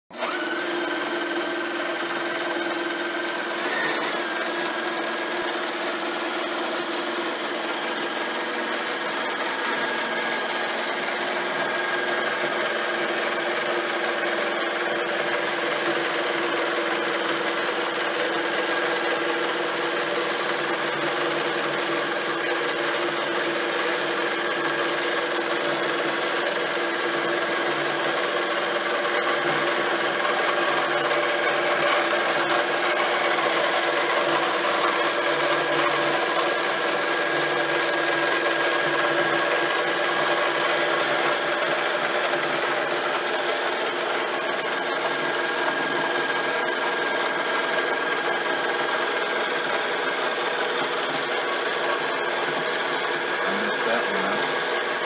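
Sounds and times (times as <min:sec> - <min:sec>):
sewing machine running: 0:00.1 - 0:55.0.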